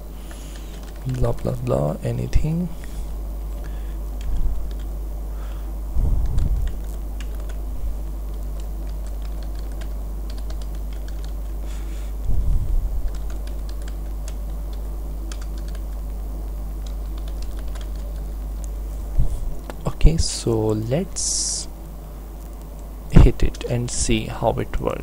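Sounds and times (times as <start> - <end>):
low hum: 0.0 - 25.0.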